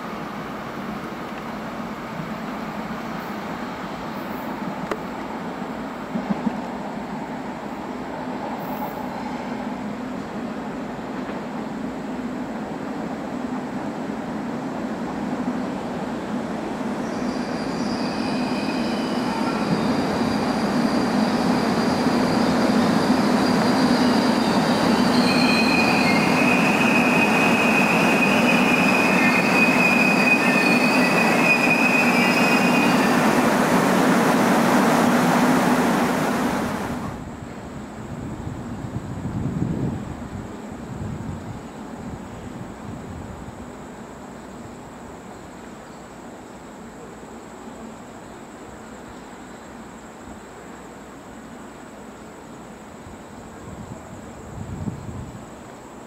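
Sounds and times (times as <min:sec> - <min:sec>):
electric train approaching: 0:00.0 - 0:38.7
train wheels squealing: 0:08.3 - 0:09.9, 0:16.8 - 0:33.8.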